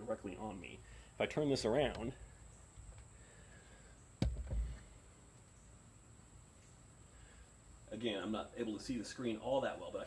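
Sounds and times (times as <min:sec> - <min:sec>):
faint steady background: 0:00.0 - 0:10.0
camera handling knocks: 0:04.2 - 0:04.7
low thump: 0:04.2 - 0:04.8.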